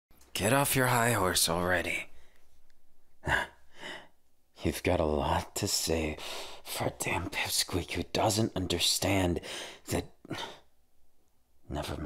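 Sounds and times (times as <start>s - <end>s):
man speaking: 0.3s - 2.2s, 4.6s - 10.6s, 11.7s - 12.0s
man's sharp breath: 6.2s - 6.6s, 9.4s - 10.7s.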